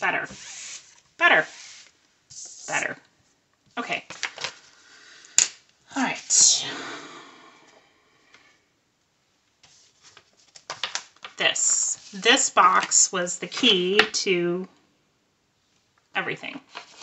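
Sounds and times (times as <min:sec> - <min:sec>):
paper swishing slide: 0:00.4 - 0:02.8
paper rustling: 0:09.6 - 0:13.0, 0:16.7 - 0:17.0.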